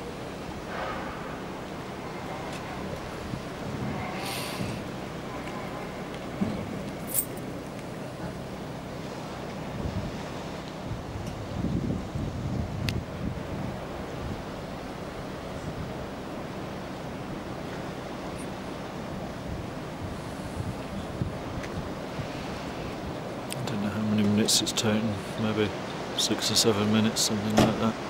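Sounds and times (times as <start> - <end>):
wind buffeting microphone: 0.0 - 16.4, 19.0 - 23.4
surf washing on shore: 0.0 - 28.0.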